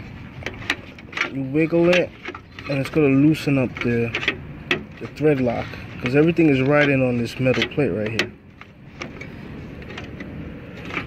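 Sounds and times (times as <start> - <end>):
low steady rumble: 0.0 - 11.0
faint clicks and knocks: 0.3 - 11.0.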